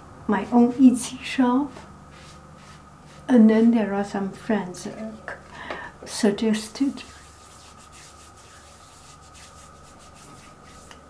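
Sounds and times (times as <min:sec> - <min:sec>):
palms rubbing skin: 0:01.7 - 0:03.3, 0:06.8 - 0:11.0.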